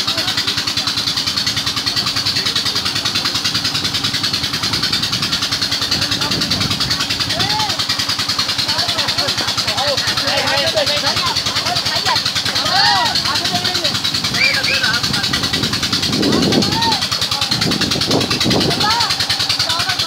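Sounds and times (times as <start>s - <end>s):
small engine running: 0.0s - 20.0s.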